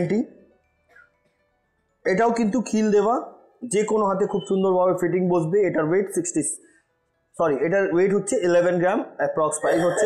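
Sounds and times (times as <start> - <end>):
man's voice: 7.4 - 10.0.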